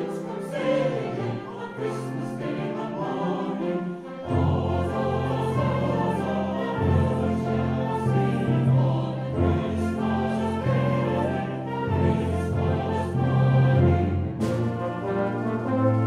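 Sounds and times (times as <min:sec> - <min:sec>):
mixed choir singing carol: 0:00.0 - 0:15.8
concert wind band: 0:00.0 - 0:16.0.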